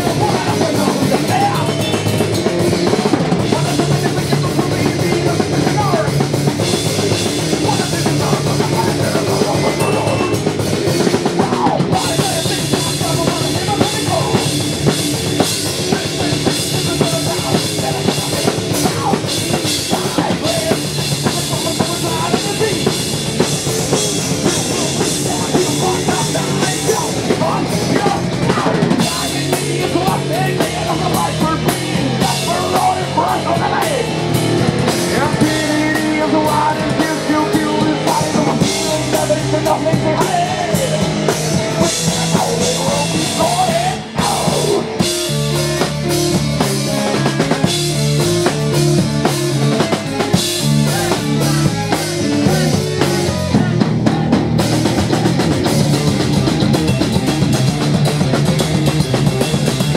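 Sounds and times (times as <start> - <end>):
drum kit: 0.0 - 59.9
live rock band playing: 0.0 - 59.9.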